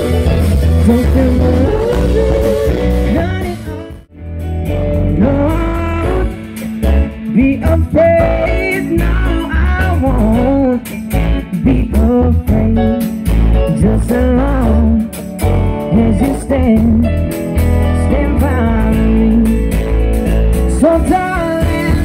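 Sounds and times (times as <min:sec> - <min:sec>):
gliding lead melody: 0:00.0 - 0:22.0
pop-rock band playing: 0:00.0 - 0:22.0.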